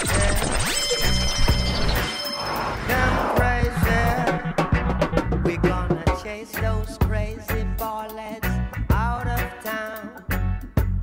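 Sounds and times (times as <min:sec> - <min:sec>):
pitch-gliding electronic effects: 0:00.0 - 0:05.7
reggae music with heavy bass: 0:00.0 - 0:11.0.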